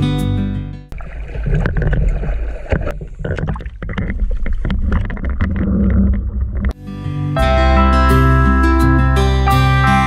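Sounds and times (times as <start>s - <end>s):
water splashing against boat hull: 0.9s - 6.8s
low rumble: 1.4s - 6.8s.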